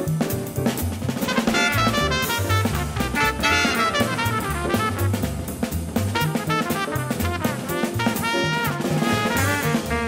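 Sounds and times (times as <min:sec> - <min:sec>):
bass line: 0:00.0 - 0:10.0
hard-bop jazz recording: 0:00.0 - 0:10.0.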